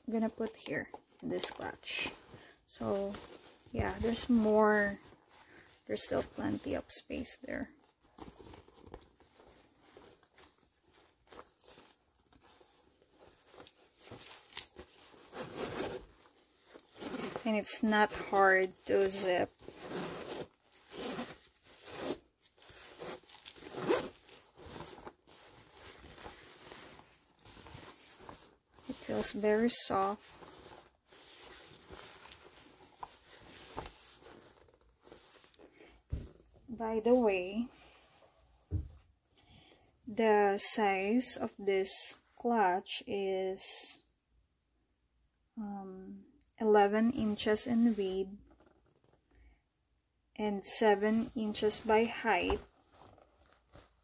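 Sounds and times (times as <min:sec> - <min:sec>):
rustling inside a clutch bag: 0:00.0 - 0:39.2, 0:47.2 - 0:49.4, 0:50.6 - 0:54.0
metal zipper pulled closed: 0:16.9 - 0:17.4.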